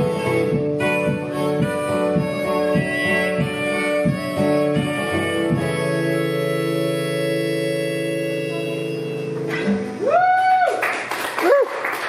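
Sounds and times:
acoustic guitar strums: 0.0 - 10.0.

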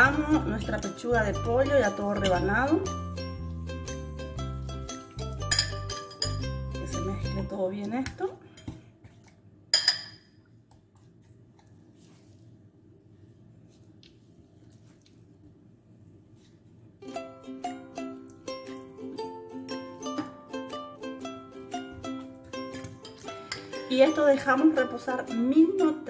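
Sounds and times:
plucked-string background music: 0.0 - 7.7, 17.0 - 26.0
fork clinking on glass bowl: 5.3 - 6.6
quiet low hum: 5.5 - 17.1.

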